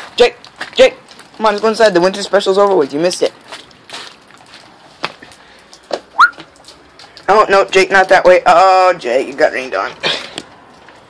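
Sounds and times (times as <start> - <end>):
sharp rising whistle: 6.2 - 6.4.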